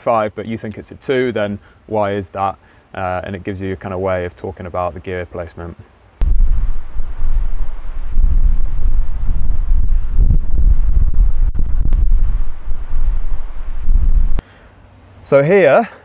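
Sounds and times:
wind buffeting microphone: 6.2s - 14.4s.

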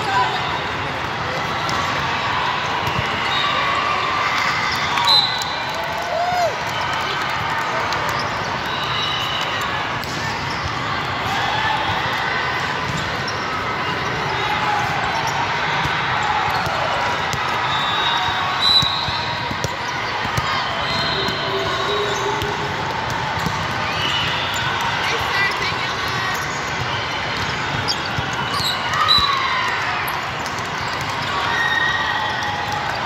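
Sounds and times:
sneakers squeaking on court: 10.0s - 10.8s, 12.8s - 16.8s, 17.4s - 22.6s, 23.4s - 24.6s, 25.4s - 29.4s
background chatter: 18.3s - 28.9s.

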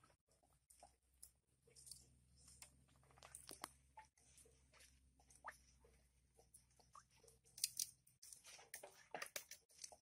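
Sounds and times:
wet squelching clicks: 7.5s - 8.4s.

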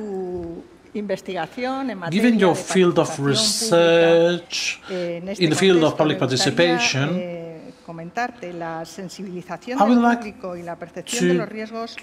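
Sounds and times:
person speaking: 2.1s - 7.2s, 9.8s - 10.4s, 11.1s - 11.6s.

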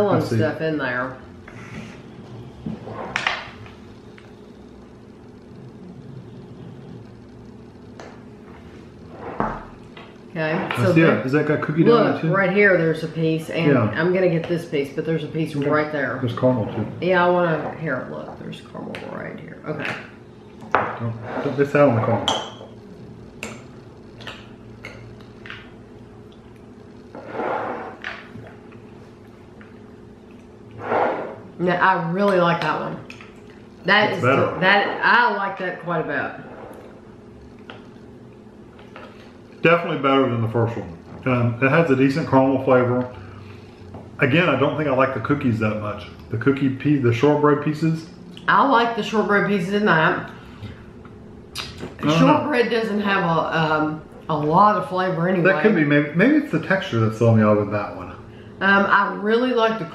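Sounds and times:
low room hum: 0.0s - 59.9s.

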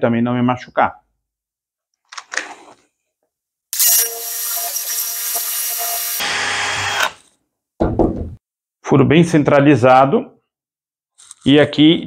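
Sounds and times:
drill boring into wood: 3.8s - 7.3s.

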